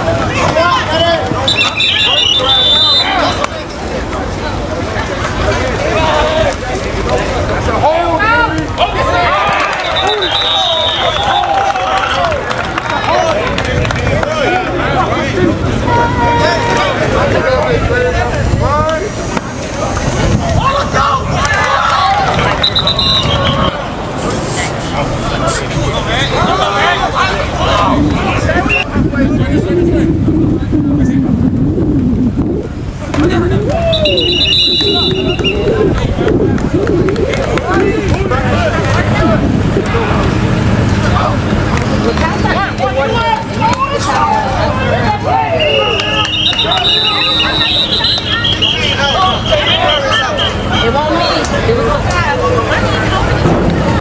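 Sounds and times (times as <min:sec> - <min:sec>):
open-air game noise: 0:00.0 - 0:54.0
players calling and chattering: 0:00.0 - 0:54.0
referee's whistle: 0:00.9 - 0:03.3, 0:09.7 - 0:11.5, 0:22.6 - 0:23.8, 0:28.7 - 0:28.9, 0:33.8 - 0:35.8, 0:45.5 - 0:50.8.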